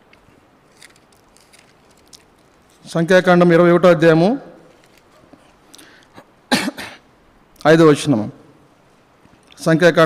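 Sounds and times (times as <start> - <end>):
man coughing: 6.2 - 7.1.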